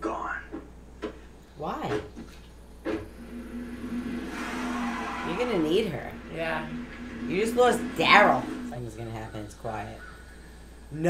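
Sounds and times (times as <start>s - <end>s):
rushing swell: 3.0s - 10.8s
low drone: 3.0s - 11.0s.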